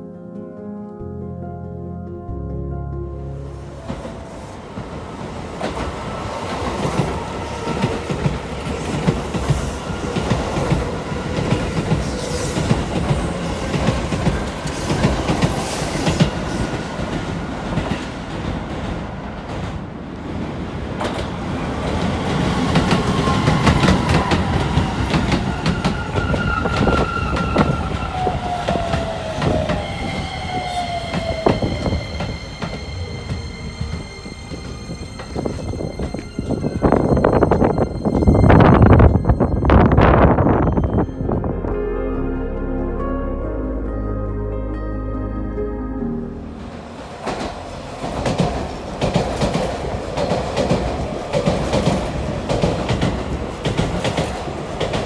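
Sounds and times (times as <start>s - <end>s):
high-pitched train hum: 2.3s - 55.0s
train whine falling in pitch: 22.6s - 44.2s.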